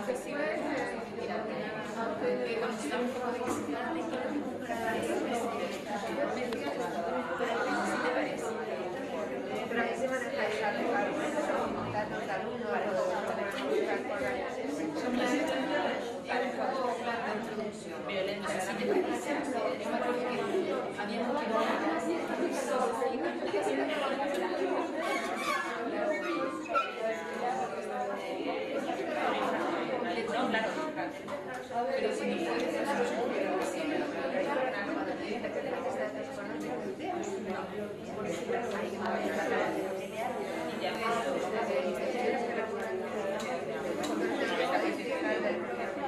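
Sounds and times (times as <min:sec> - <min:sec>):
chatter of many people: 0:00.0 - 0:46.0.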